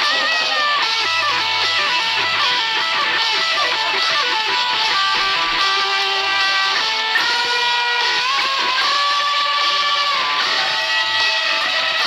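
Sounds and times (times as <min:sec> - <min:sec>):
electric guitar lead with bends: 0:00.0 - 0:12.0.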